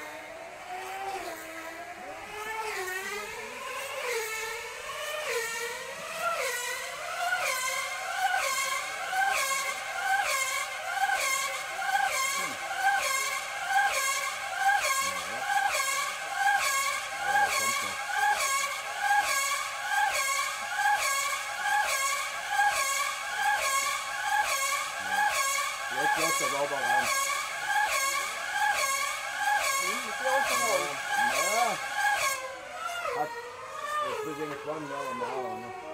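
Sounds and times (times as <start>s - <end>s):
high-revving two-stroke model engine: 0.0s - 35.9s.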